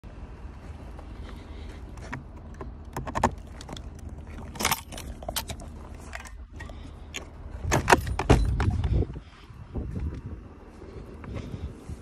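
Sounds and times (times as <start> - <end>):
metal ladder clicking and rattling: 2.9 - 6.8, 7.6 - 8.8.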